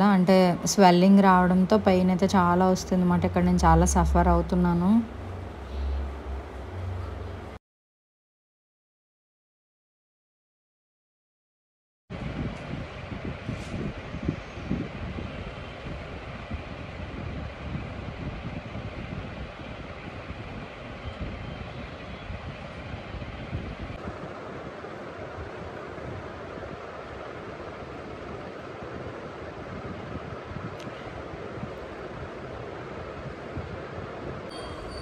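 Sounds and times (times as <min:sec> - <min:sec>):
wind on phone microphone: 0:12.1 - 0:35.0.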